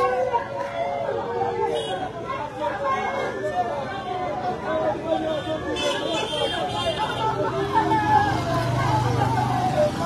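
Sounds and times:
people talking in the street: 0.0 - 10.0.

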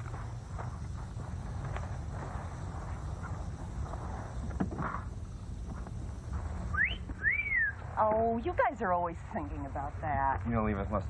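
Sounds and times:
steady low rumble: 0.0 - 11.0
man's wolf whistle: 6.7 - 7.8.

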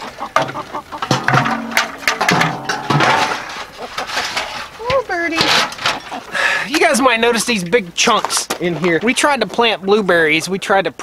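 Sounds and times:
metal waterer clanking and scraping: 0.0 - 10.6.

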